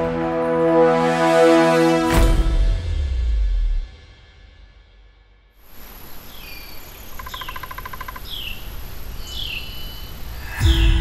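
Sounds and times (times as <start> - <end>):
rapid bird trill: 6.4 - 8.7.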